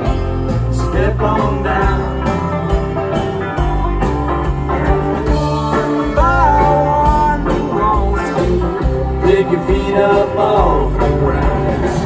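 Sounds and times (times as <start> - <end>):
live funk band playing: 0.0 - 12.0.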